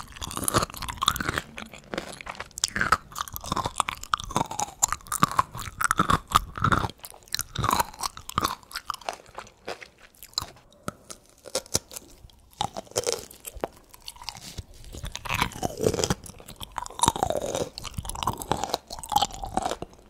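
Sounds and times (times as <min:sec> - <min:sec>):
crisp crunching chewing: 0:00.0 - 0:20.0
wet mouth sounds: 0:00.0 - 0:20.0.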